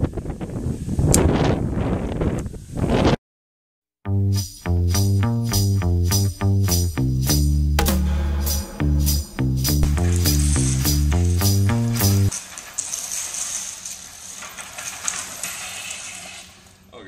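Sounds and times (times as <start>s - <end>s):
music with bass and percussion: 4.1s - 12.3s
reel mower blades whirring on concrete: 9.9s - 17.0s.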